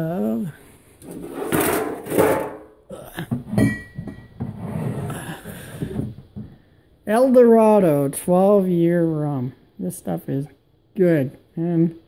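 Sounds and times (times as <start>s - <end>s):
glass bottle rustling and knocking: 3.4s - 4.6s
glass bottle clinking: 3.5s - 4.4s.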